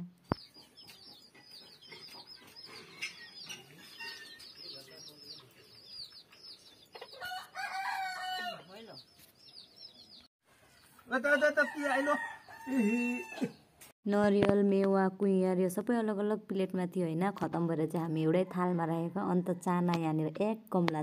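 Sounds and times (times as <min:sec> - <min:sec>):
chicks peeping: 0:00.3 - 0:11.0
rooster crowing: 0:07.1 - 0:08.8, 0:11.3 - 0:13.6.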